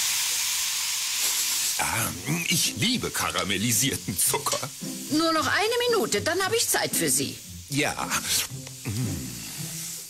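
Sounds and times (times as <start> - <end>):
faint sizzle: 0.0 - 10.0
man humming pleased: 8.8 - 9.7.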